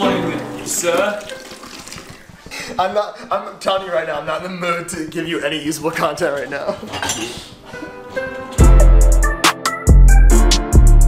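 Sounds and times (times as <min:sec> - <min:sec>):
water running from faucet: 0:00.0 - 0:02.4
man talking: 0:02.7 - 0:07.0.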